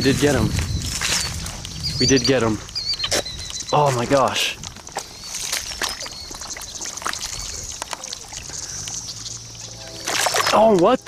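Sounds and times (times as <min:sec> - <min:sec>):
splashing in shallow pond water: 0:04.0 - 0:11.0.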